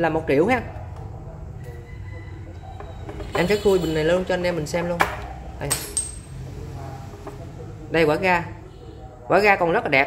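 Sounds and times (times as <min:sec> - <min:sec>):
ringing metal clink: 0:05.7 - 0:06.3.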